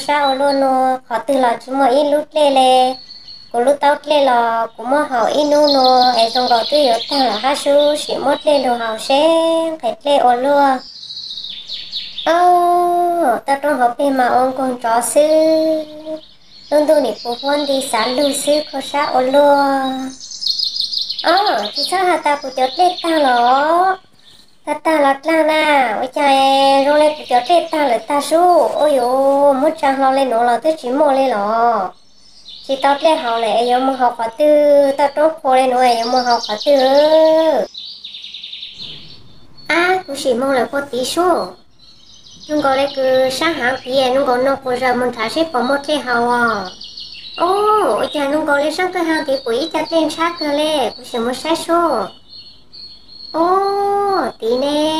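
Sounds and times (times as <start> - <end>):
birds chirping in a trill: 0.0 - 54.9
person speaking: 3.6 - 10.8, 12.3 - 20.2, 21.2 - 24.0, 24.7 - 31.9, 32.7 - 37.7, 39.7 - 41.6, 42.5 - 46.8, 47.4 - 52.1, 53.4 - 54.9.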